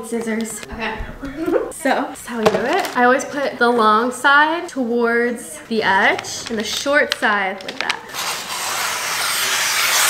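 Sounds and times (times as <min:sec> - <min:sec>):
foil wrapping paper rustling: 0:05.7 - 0:10.0.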